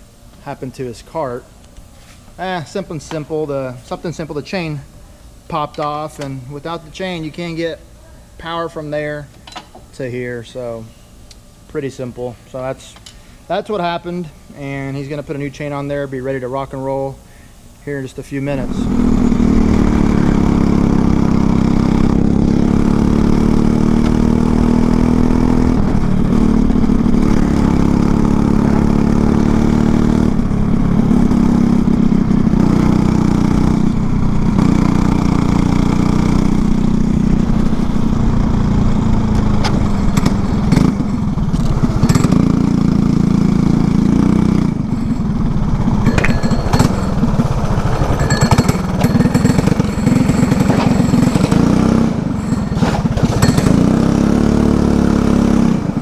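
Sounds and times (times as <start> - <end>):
kart engine running hard: 18.6 - 56.0.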